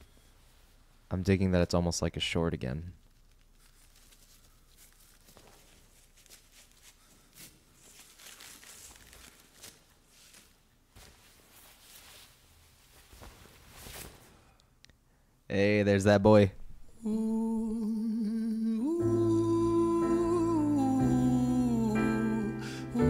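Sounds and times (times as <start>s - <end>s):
faint rustling: 3.0s - 14.7s.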